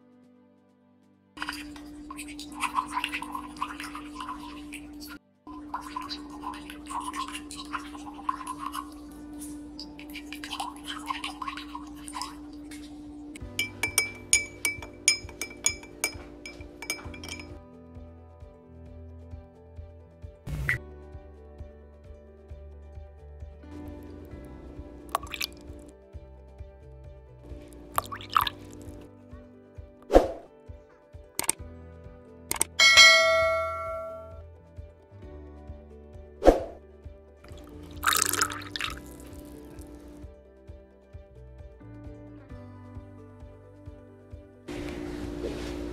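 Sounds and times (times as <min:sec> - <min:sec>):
quiet background music: 0:00.0 - 0:45.9
spoon clinking against glass: 0:01.4 - 0:05.1, 0:05.7 - 0:09.1, 0:09.8 - 0:12.8, 0:13.4 - 0:17.6, 0:32.5 - 0:34.4, 0:38.0 - 0:39.2
mouse clicks: 0:31.4 - 0:31.6, 0:32.5 - 0:32.8
bell ding: 0:32.8 - 0:34.4.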